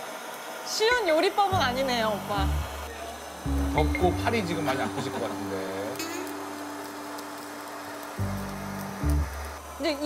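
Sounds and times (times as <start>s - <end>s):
background music: 1.6s - 2.9s, 3.5s - 9.6s
gas torch flame hissing: 4.4s - 10.0s.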